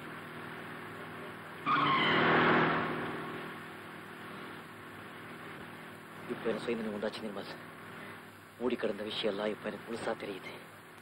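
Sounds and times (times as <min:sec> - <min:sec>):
low car hum: 0:00.0 - 0:08.6
car tyres screeching: 0:01.6 - 0:03.6.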